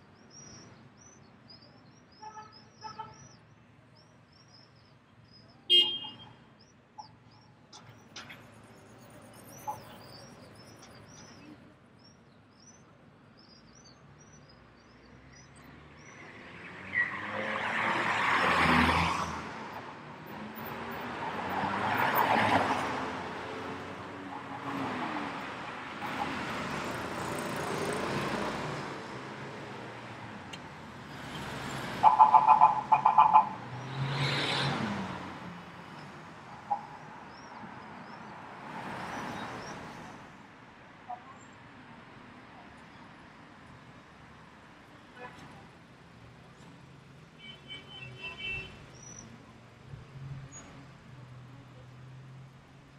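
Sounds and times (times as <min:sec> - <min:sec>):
cars passing: 0:14.6 - 0:40.8.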